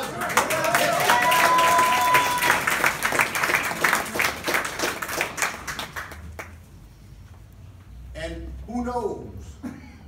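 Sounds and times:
audience applauding: 0.0s - 6.6s.

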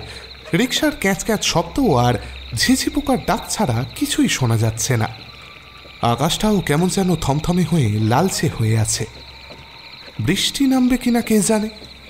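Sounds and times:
crickets chirring: 0.0s - 12.0s
frogs croaking: 0.0s - 12.0s.

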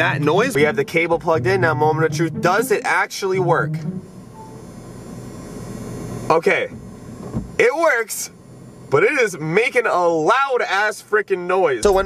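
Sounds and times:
power inverter hum and whine: 0.0s - 12.0s
short faint tone: 3.6s - 4.8s.

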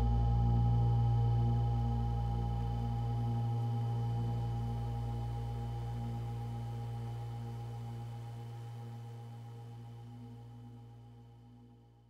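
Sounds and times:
held synth chord drone: 0.0s - 11.7s.

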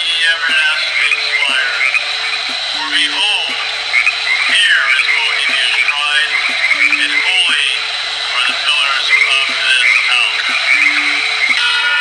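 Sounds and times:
high croaking calls: 0.0s - 12.0s
slow music of low notes: 0.0s - 12.0s.

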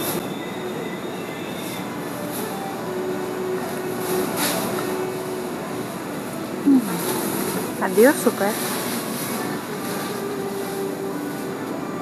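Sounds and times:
refrigerator hum and hiss: 0.0s - 12.0s.

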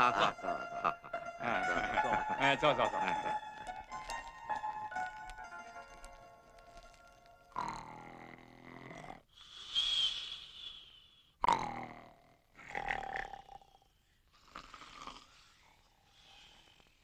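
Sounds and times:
cartoon snoring: 7.5s - 10.3s, 11.4s - 17.0s
whistling breath out: 9.4s - 11.4s.

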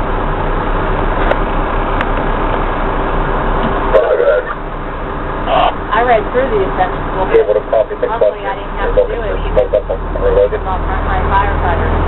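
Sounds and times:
truck engine and road noise: 0.0s - 12.0s.

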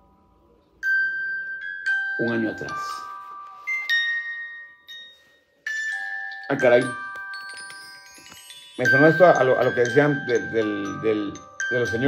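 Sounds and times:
bell-like mallet percussion notes: 0.0s - 12.0s.

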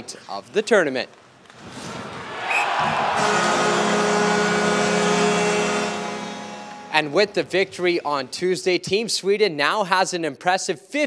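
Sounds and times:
arena crowd noise: 2.1s - 8.4s
loud steady goal horn: 2.5s - 7.4s.

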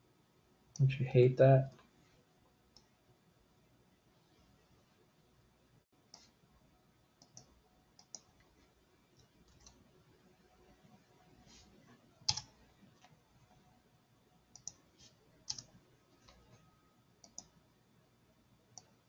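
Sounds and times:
computer mouse and keyboard clicks: 7.2s - 8.4s, 9.2s - 9.8s, 12.2s - 13.2s, 14.5s - 14.8s, 15.5s - 16.6s, 17.2s - 17.5s.

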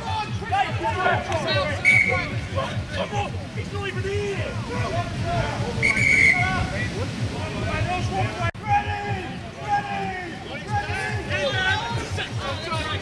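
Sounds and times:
wind buffeting microphone: 1.1s - 13.0s
referee's whistle blast: 1.8s - 2.4s, 5.8s - 6.4s
people shouting: 8.0s - 13.0s.

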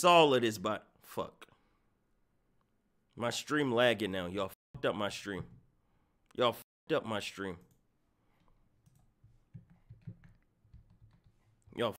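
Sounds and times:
computer keyboard clicking: 8.8s - 11.4s.

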